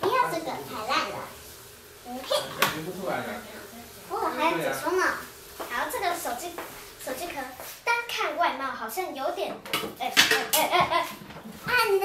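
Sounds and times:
young children chattering: 3.4s - 12.0s.

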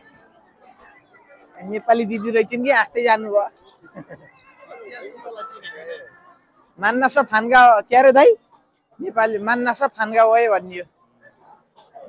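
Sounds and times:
faint street crowd voices: 0.0s - 12.0s.

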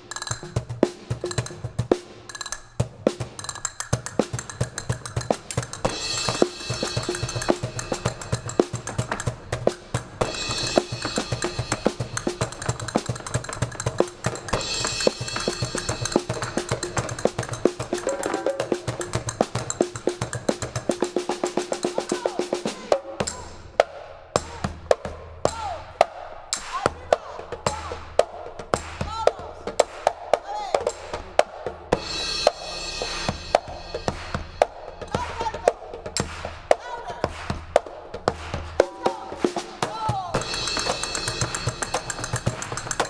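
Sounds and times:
drum kit: 0.0s - 43.0s
djembe: 2.9s - 25.3s, 26.8s - 43.0s
cymbal washes: 3.1s - 23.7s, 31.9s - 36.5s, 40.4s - 43.0s.

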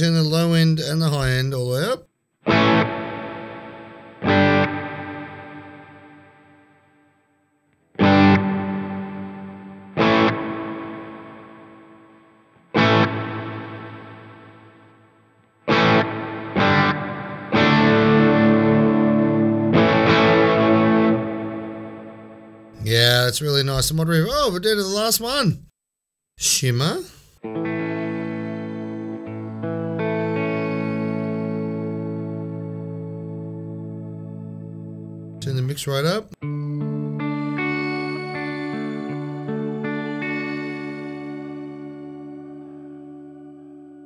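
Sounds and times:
electric guitar chords with reverb: 2.4s - 22.8s, 27.4s - 35.5s, 36.4s - 44.0s.

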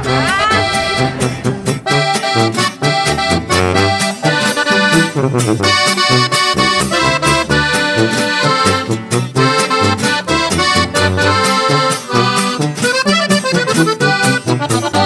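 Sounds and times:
accordion-led instrumental music: 0.0s - 15.0s
bass line: 0.0s - 15.0s.

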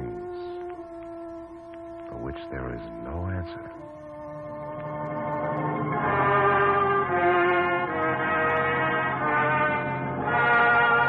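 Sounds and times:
orchestral music with brass: 0.0s - 11.0s.

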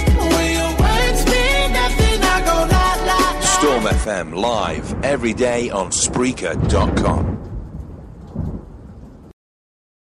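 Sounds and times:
rolling thunder: 3.8s - 9.3s.

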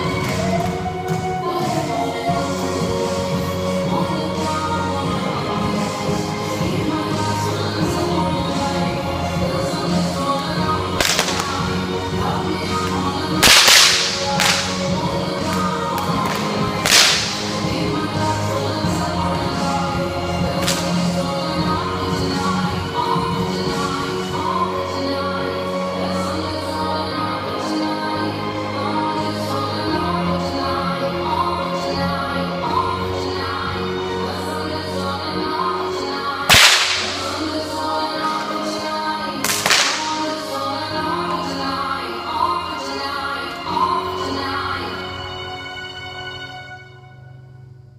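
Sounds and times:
background music: 0.0s - 47.9s
bullwhip cracking: 11.0s - 11.7s, 13.4s - 15.0s, 16.0s - 17.6s, 20.6s - 20.9s, 36.5s - 37.4s, 39.4s - 40.3s.

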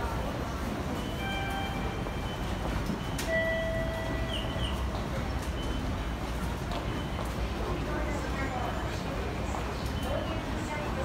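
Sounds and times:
low rumble of hall and commuters: 0.0s - 11.0s.

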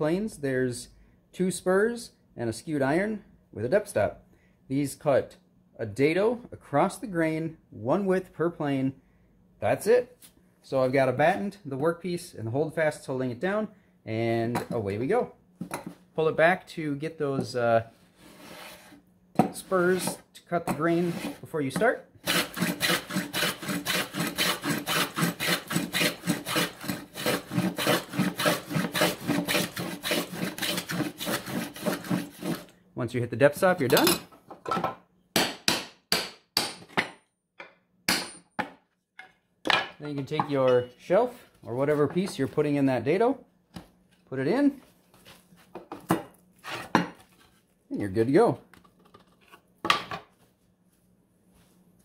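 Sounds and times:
hand plane rasping wood: 22.2s - 32.7s.

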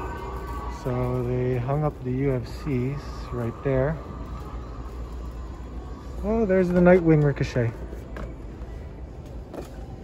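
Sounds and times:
low store background hum: 0.0s - 10.0s.

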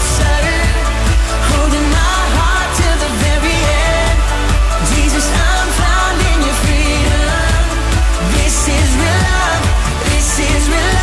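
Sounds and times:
bass: 0.0s - 11.0s
drums: 0.0s - 11.0s
person singing: 0.0s - 11.0s.

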